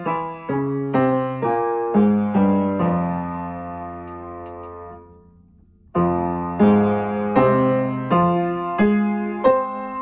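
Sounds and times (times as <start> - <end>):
upright piano playing a scale: 0.0 - 5.2, 6.0 - 10.0.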